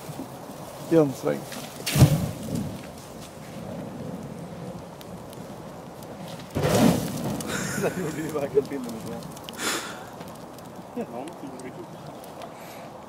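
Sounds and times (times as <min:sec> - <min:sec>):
fire crackling in barrel: 0:00.0 - 0:13.0.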